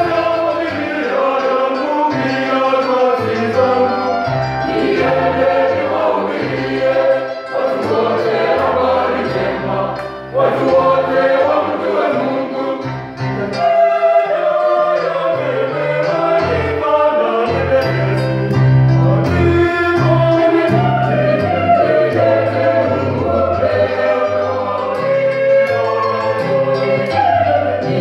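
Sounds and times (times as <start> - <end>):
choir singing gospel song: 0.0 - 28.0.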